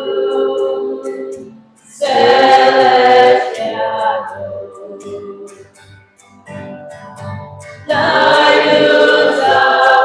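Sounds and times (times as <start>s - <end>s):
choir of women singing a hymn: 0.0s - 5.6s, 7.9s - 10.0s.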